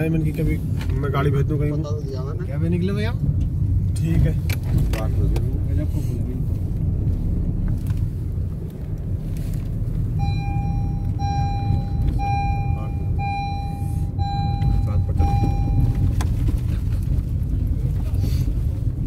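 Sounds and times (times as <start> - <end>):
car cabin road rumble: 0.0 - 19.0
electronic beeper beeping: 10.2 - 16.1.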